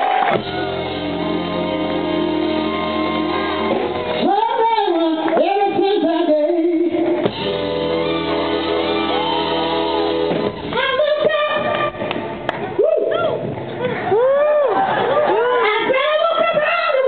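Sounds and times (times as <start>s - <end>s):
band holding sustained chords: 0.4s - 4.8s
woman singing with vibrato: 4.2s - 7.3s, 10.7s - 12.0s.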